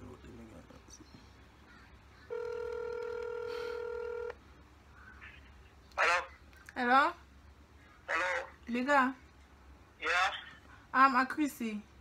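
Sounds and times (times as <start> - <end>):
phone ringback tone: 2.3 - 4.4.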